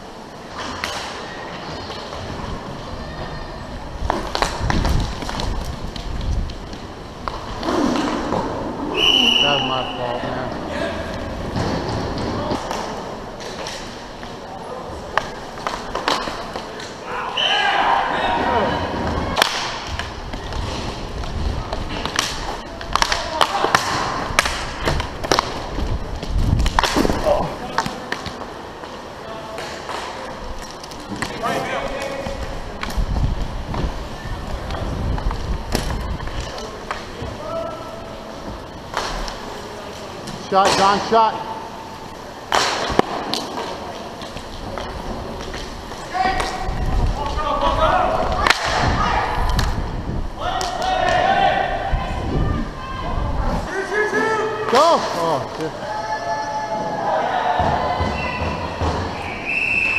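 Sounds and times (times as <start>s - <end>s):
sticks and puck clacking: 0.5s - 1.2s, 4.0s - 8.7s, 11.1s - 14.4s, 15.0s - 17.1s, 19.0s - 37.8s, 38.4s - 41.4s, 42.4s - 49.8s
referee's whistle: 8.9s - 10.2s, 59.2s - 59.9s
players shouting: 17.0s - 19.8s, 50.4s - 59.4s.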